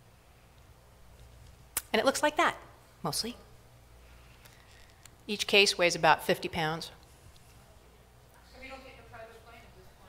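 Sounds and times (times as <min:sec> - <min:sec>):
woman speaking: 0:01.8 - 0:03.6, 0:05.3 - 0:07.0, 0:08.4 - 0:10.0.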